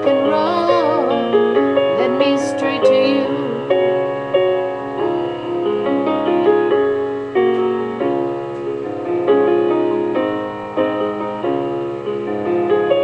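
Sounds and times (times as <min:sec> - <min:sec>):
slow piano music: 0:00.0 - 0:13.0.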